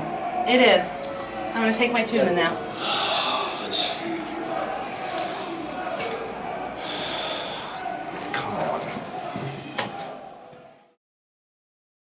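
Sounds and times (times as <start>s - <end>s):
room noise hum: 0.0s - 10.5s
indistinct background voices: 0.0s - 11.0s.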